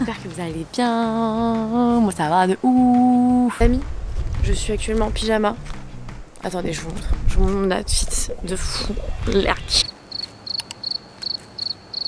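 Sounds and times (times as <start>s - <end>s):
cricket chirping: 9.8s - 12.0s.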